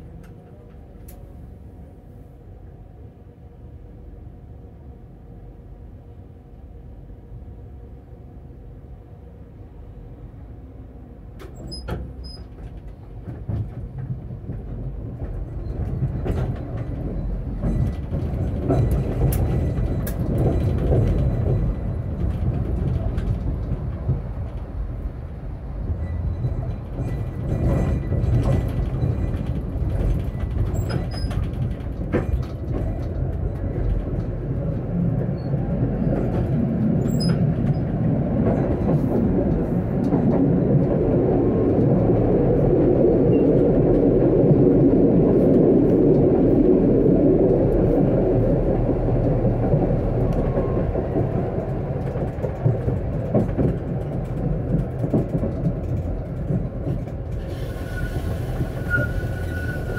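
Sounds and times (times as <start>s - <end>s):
tram wheels rumbling on rails: 0.0s - 59.9s.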